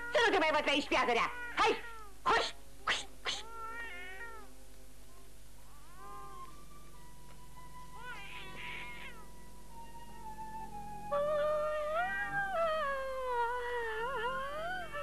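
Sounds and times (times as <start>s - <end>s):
woman shouting: 0.1s - 2.6s.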